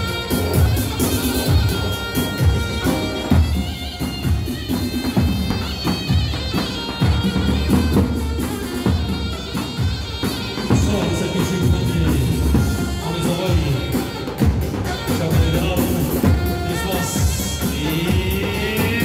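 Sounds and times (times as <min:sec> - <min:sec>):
large drum beating: 0:00.0 - 0:19.0
shawm playing a melody: 0:00.0 - 0:19.0.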